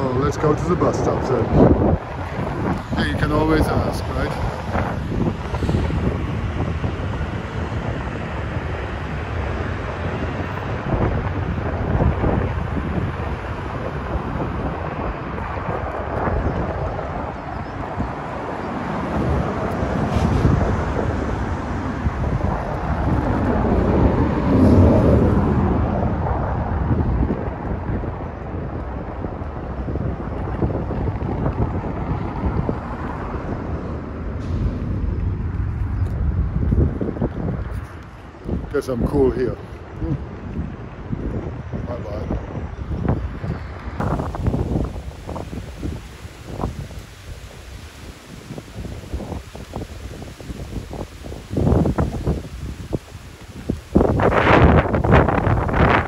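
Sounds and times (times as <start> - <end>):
street traffic: 0.0 - 56.0
wind rumbling on microphone: 0.0 - 56.0.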